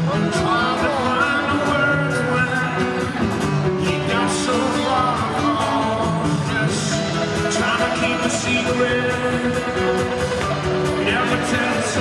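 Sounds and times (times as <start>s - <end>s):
acoustic guitar: 0.0s - 12.0s
electric bass: 0.0s - 12.0s
person singing lead vocal: 0.0s - 12.0s.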